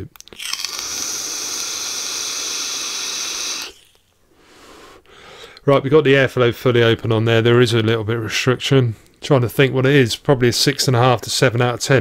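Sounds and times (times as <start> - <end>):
hiss of air and vapour: 0.6 - 4.0.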